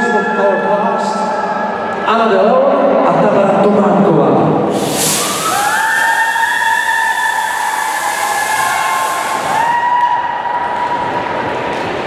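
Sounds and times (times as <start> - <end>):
jet machine hissing: 4.7 - 9.7.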